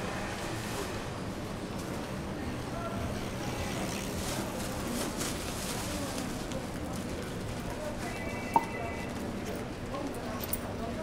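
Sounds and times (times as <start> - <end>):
faint voices of passers-by: 0.0 - 11.0.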